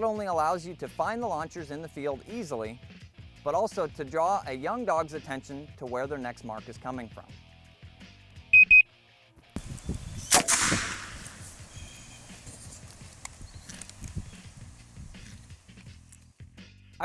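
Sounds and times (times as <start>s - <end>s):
blank gun shot: 10.2s - 12.1s.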